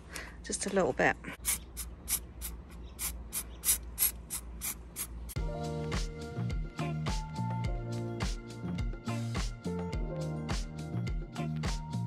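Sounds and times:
spray paint can hissing in bursts: 1.4 - 5.4
music: 5.4 - 12.0.

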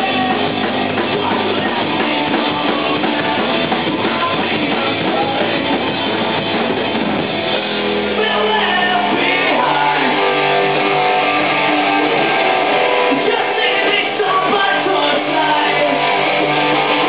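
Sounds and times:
bass guitar: 0.0 - 17.0
drum kit: 0.0 - 17.0
electric guitar: 0.0 - 17.0
person singing hard: 8.1 - 12.2, 12.9 - 17.0.

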